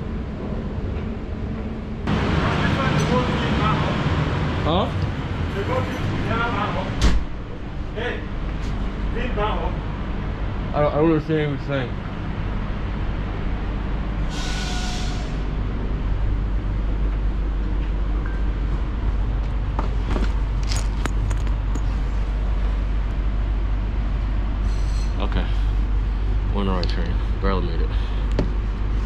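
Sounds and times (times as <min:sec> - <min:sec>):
train carriage rumble: 0:00.0 - 0:29.0.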